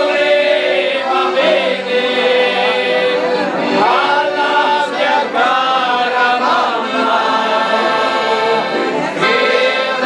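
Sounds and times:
accordion chords: 0.0 - 10.0
group singing: 0.0 - 10.0.

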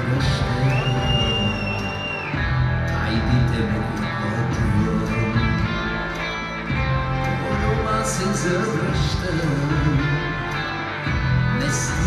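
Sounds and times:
drums: 0.0 - 12.0
electric bass: 0.0 - 12.0
live band playing: 0.0 - 12.0.

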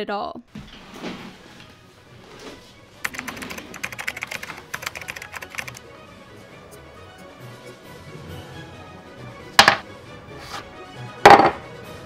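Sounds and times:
typing on computer keyboard: 3.0 - 5.8.

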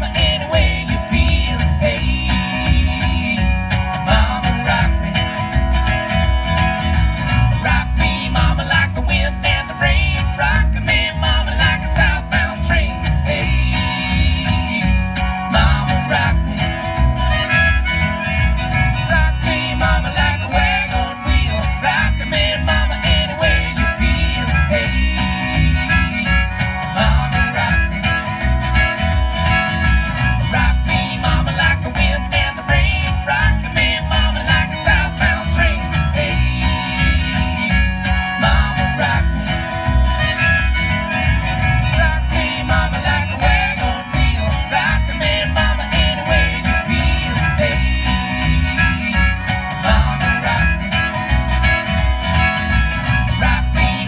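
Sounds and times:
acoustic guitar strumming: 0.0 - 54.0
harmonica melody: 0.0 - 54.0.

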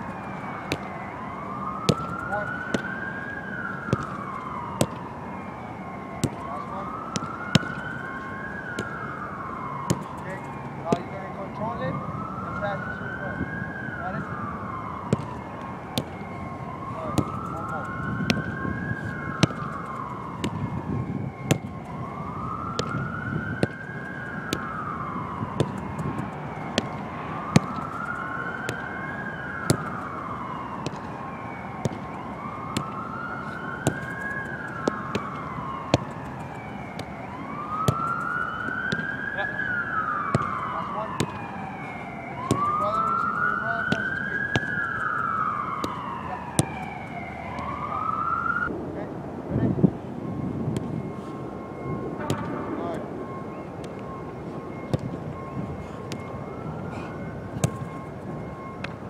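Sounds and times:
wailing emergency siren: 0.0 - 59.0.

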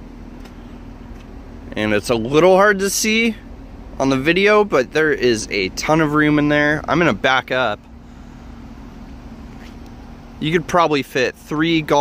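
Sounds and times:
faint steady hum: 0.0 - 12.0
low outdoor rumble: 0.0 - 12.0.

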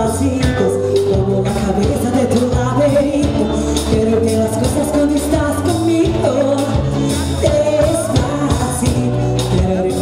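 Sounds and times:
drum kit: 0.0 - 10.0
electric guitar: 0.0 - 10.0
woman singing lead: 0.0 - 10.0.

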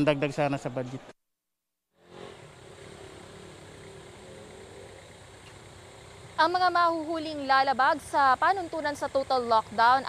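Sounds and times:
street ambience: 2.0 - 10.0
vehicle engine humming: 2.0 - 10.0.

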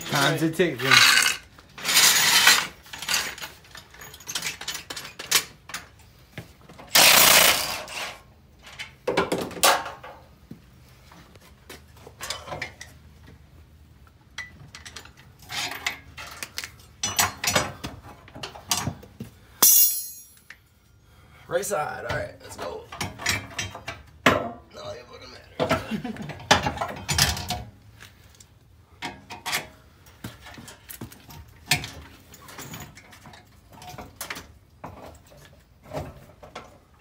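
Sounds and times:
metal tools clanking and rattling: 0.0 - 6.0, 12.2 - 13.0, 14.4 - 19.0, 19.6 - 20.6, 22.5 - 24.6, 25.6 - 27.7, 29.0 - 36.8.

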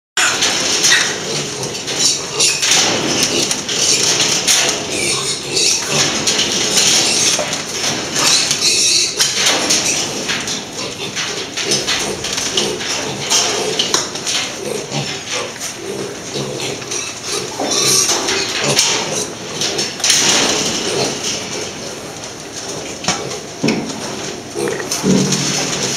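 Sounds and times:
piglets squealing and grunting: 0.2 - 2.6, 3.2 - 6.1, 8.2 - 10.1, 14.6 - 19.3
trotters clattering on metal grating: 0.2 - 25.9.

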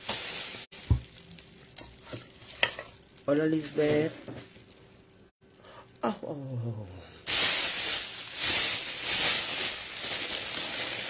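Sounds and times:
plastic bag crinkling: 7.3 - 11.0.

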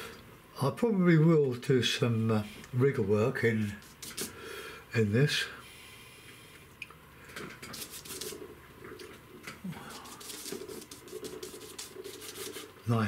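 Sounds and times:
brush strokes on palette: 7.7 - 8.6, 9.9 - 13.0.

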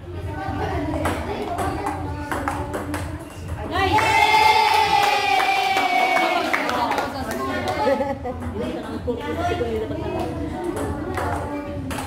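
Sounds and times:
voices of people watching: 0.0 - 12.0.

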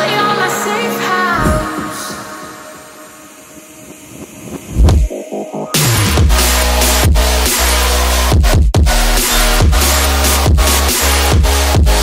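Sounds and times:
hissing noise: 1.3 - 5.8.

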